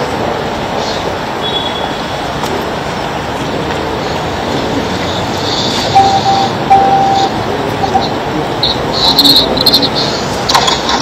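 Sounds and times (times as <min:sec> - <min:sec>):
loud steady background hiss: 0:00.0 - 0:11.0.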